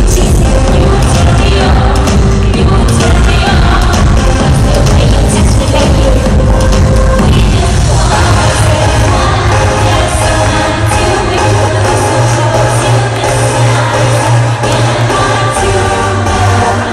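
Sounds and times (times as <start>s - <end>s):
electronic dance-pop music: 0.0s - 16.9s
person singing: 0.0s - 16.9s.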